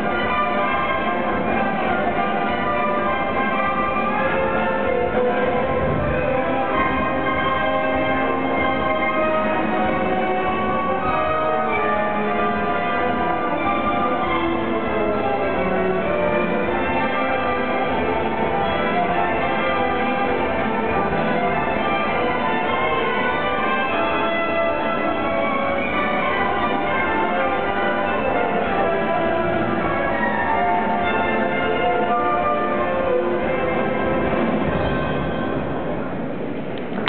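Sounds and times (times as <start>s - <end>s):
orchestra playing a waltz: 0.0s - 37.0s.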